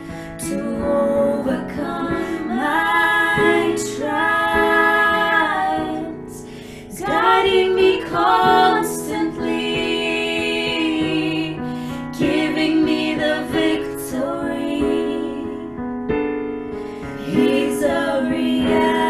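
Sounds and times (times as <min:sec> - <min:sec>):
piano chords: 0:00.0 - 0:19.0
women singing gospel song: 0:00.3 - 0:15.8, 0:17.2 - 0:19.0.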